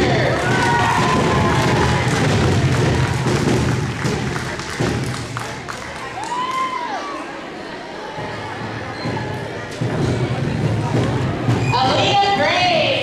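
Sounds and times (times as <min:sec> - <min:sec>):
people calling out and cheering: 0:00.0 - 0:13.0
audience clapping: 0:00.2 - 0:06.9.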